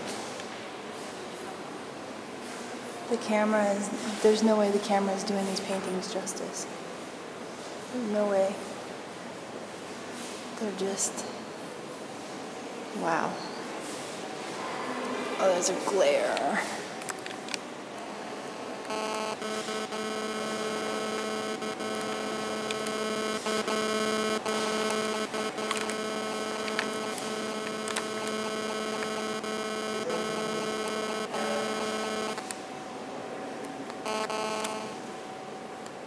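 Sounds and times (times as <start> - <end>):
electrical hum: 0.0 - 36.0.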